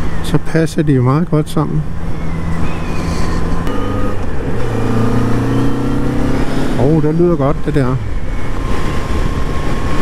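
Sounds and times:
motorcycle engine running: 1.9s - 7.1s.

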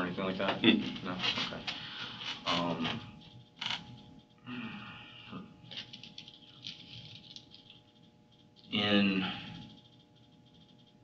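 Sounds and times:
faint electrical hum: 0.0s - 11.0s.

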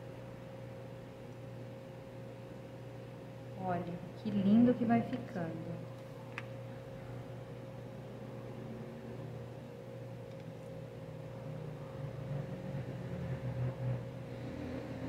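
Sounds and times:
faint constant whine: 0.0s - 15.0s
low machine hum: 0.0s - 15.0s
people talking: 3.6s - 5.8s.

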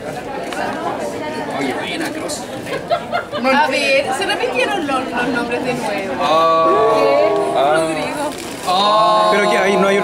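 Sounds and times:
group of people chattering: 0.0s - 10.0s.

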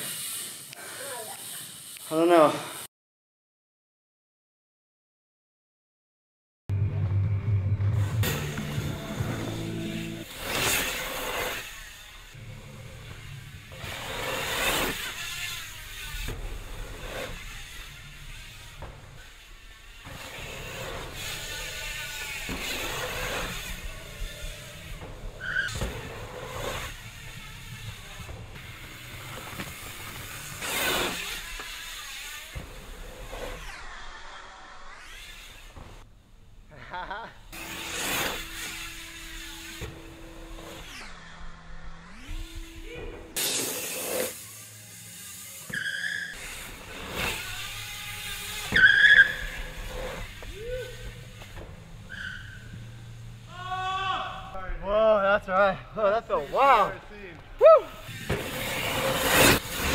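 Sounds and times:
bike tyres grinding over dirt: 7.8s - 36.6s, 37.5s - 54.5s, 56.0s - 59.9s
bike landing thuds: 15.9s - 33.3s, 46.4s - 53.3s, 58.1s - 58.9s.

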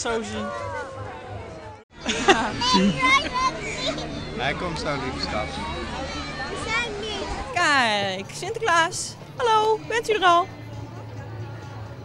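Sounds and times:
children chattering in crowd: 2.4s - 7.6s, 9.2s - 12.0s.

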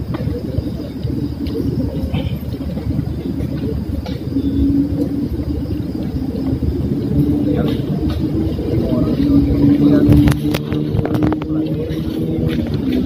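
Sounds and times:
low rumble: 0.0s - 13.0s.

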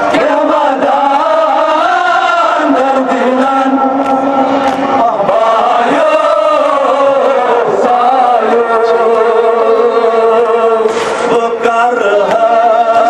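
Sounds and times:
leaders singing into microphones: 0.0s - 13.0s
men chanting in unison: 0.0s - 13.0s.

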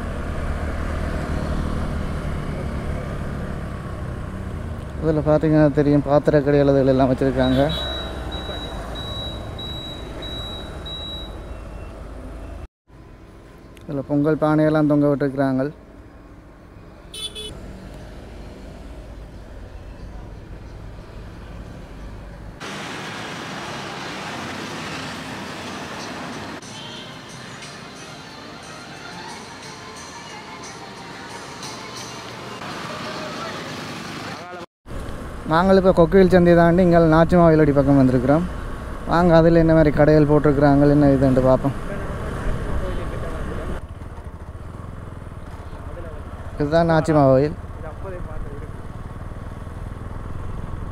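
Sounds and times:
road and traffic noise: 0.0s - 50.9s
motorcycle engine rumble: 17.1s - 22.6s, 41.8s - 50.9s.

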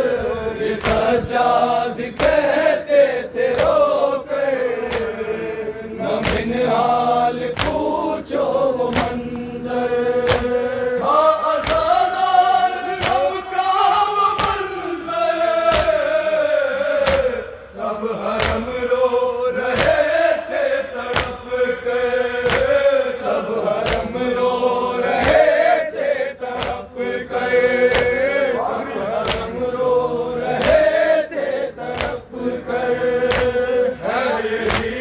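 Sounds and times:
men chanting a lament: 0.0s - 35.0s
rhythmic chest-beating slaps: 0.0s - 35.0s.

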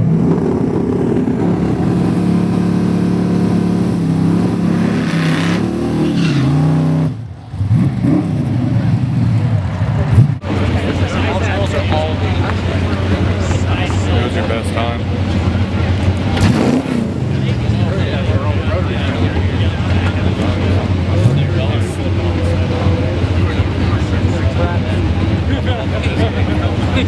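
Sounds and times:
car engines idling: 0.0s - 27.0s
engine revving: 0.0s - 27.0s
spectators talking: 0.0s - 27.0s.

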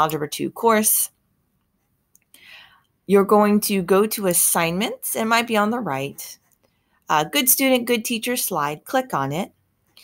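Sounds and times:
woman talking: 0.0s - 1.2s, 3.0s - 6.4s, 7.1s - 9.6s
woman taking a breath: 2.3s - 3.0s.

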